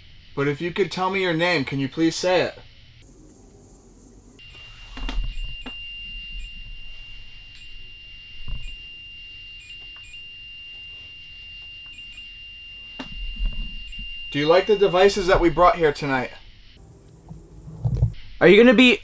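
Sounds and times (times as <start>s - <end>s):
high-pitched electronic tone: 14.3s - 18.2s.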